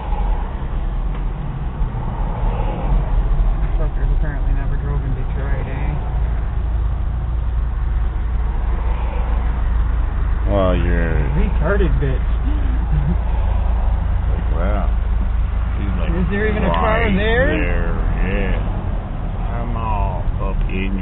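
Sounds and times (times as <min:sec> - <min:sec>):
vehicle engine and road rumble: 0:00.0 - 0:21.0
person talking: 0:10.5 - 0:13.1, 0:15.8 - 0:18.7
faint voices: 0:19.5 - 0:21.0.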